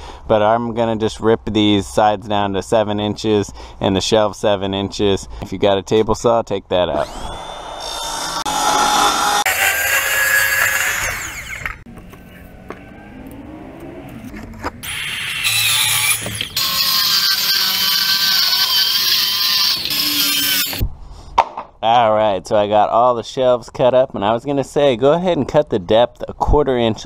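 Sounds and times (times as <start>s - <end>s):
circular saw cutting plywood: 6.9s - 13.0s, 14.2s - 20.8s.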